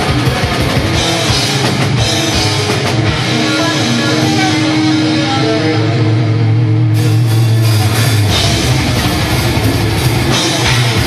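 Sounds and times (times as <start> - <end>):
fast drumming: 0.0 - 6.0, 7.4 - 11.0
distorted electric guitar: 0.0 - 11.0.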